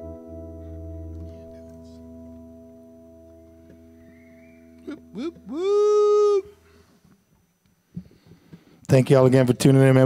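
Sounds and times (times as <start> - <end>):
guitar chord ringing: 0.0 - 6.8
man yelping and howling: 4.9 - 6.5.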